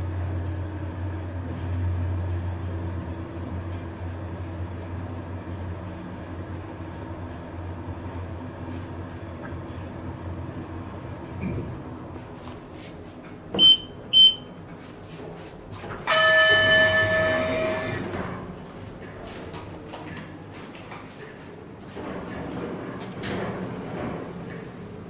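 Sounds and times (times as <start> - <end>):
elevator running hum: 0.0 - 25.0
short high beeps: 13.6 - 14.5.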